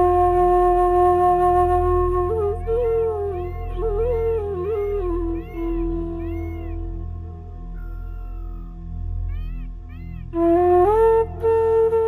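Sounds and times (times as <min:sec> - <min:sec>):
flute melody: 0:00.0 - 0:08.8, 0:09.4 - 0:12.0.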